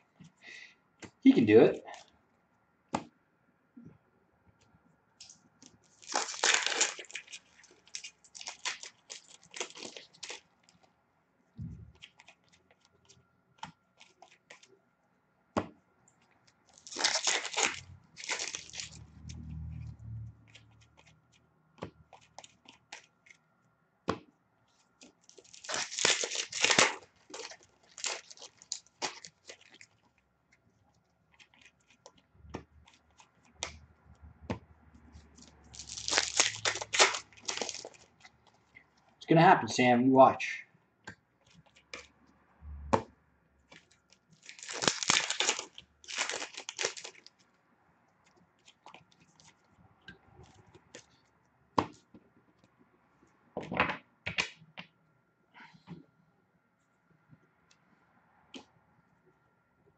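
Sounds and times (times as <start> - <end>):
card pack wrapper tearing: 5.9 - 10.5, 16.7 - 19.1, 25.0 - 30.0, 35.4 - 38.6, 43.8 - 47.4.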